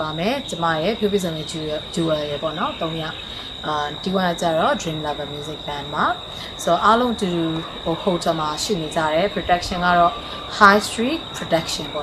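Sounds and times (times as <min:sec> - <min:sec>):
high-pitched insect drone: 0:00.0 - 0:12.0
woman talking: 0:00.0 - 0:12.0.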